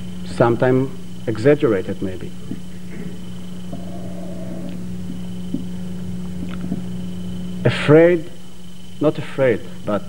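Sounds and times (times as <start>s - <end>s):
faint high-pitched whine: 0.0s - 10.0s
low electrical hum: 0.0s - 10.0s.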